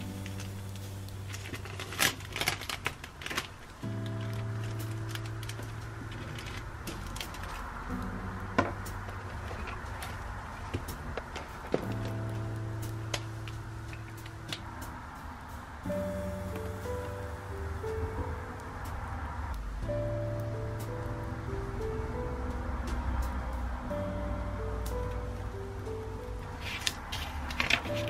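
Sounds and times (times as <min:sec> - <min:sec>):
plastic sleeve crinkling: 0:00.0 - 0:14.6, 0:26.4 - 0:28.0
background music with held chords: 0:00.0 - 0:28.0.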